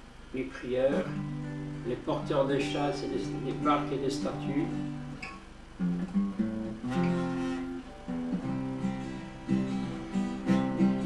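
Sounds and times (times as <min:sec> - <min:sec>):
acoustic guitar strumming: 0:00.6 - 0:11.0.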